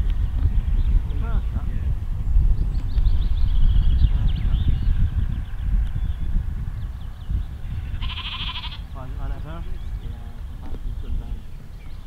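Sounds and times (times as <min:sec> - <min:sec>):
wind buffeting microphone: 0:00.0 - 0:12.0
sheep bleating: 0:07.8 - 0:08.9.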